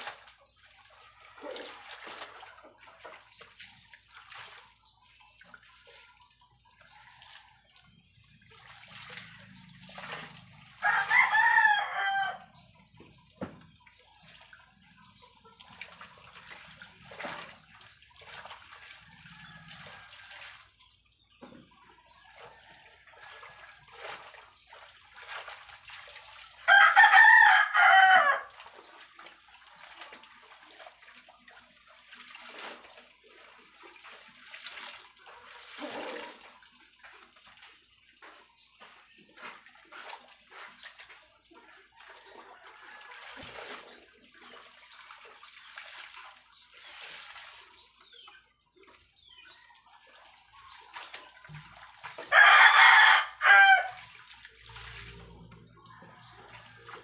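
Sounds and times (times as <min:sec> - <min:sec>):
clothes hand-washed in soapy water: 0:00.0 - 0:57.0
rooster crowing: 0:10.8 - 0:12.5, 0:26.7 - 0:28.5, 0:52.3 - 0:54.0.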